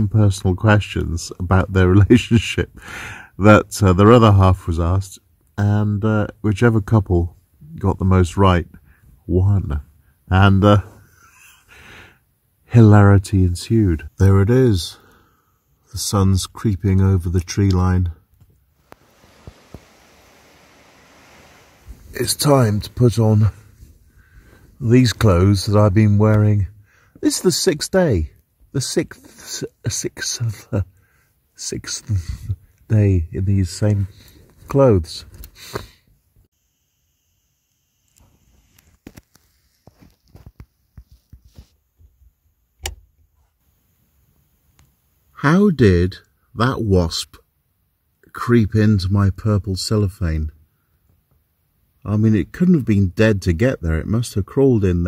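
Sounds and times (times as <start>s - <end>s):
mountain stream rushing: 18.8s - 22.3s.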